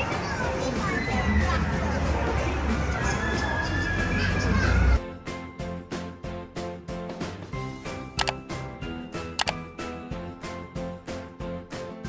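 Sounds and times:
background chatter: 0.0 - 4.9
children's voices: 0.0 - 5.0
music: 0.0 - 12.0.

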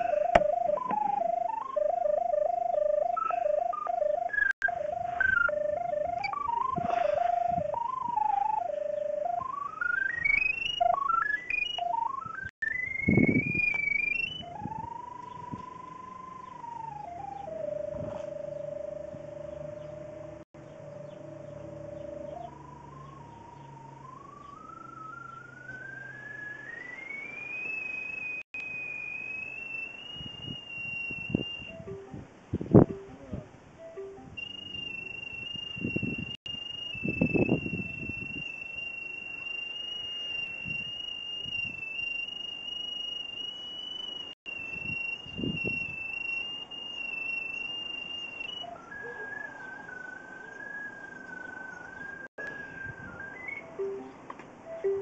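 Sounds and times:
high whistling tone: 0.0 - 20.2, 20.8 - 32.1, 33.9 - 55.0.

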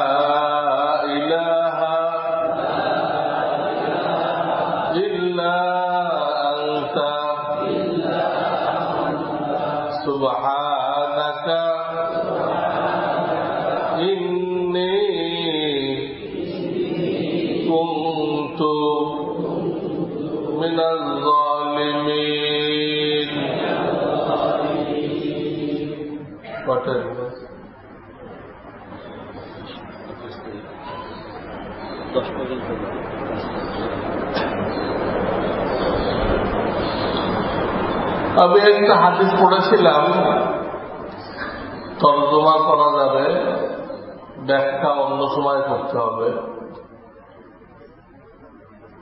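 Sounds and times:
man chanting melodically: 0.0 - 27.6, 29.0 - 47.6
breaths: 41.2 - 41.8.

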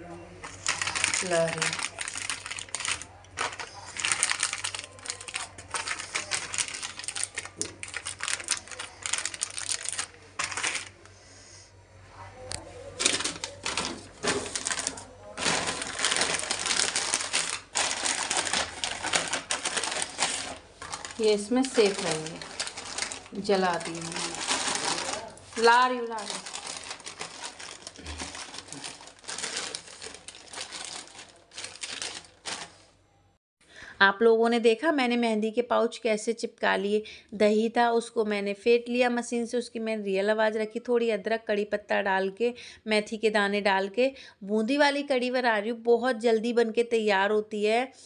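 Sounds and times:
plastic pouches crinkling: 0.4 - 11.0, 13.0 - 32.8.

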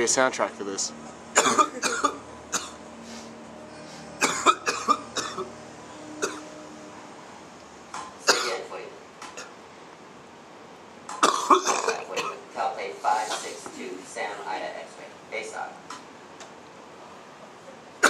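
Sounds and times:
man coughing: 1.3 - 2.8, 4.2 - 5.5, 6.2 - 6.5, 8.2 - 8.7, 11.2 - 12.4.

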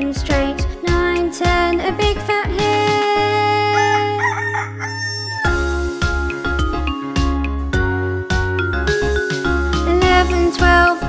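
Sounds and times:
children's tune with bell notes: 0.0 - 11.0
rooster crowing: 3.8 - 5.6.

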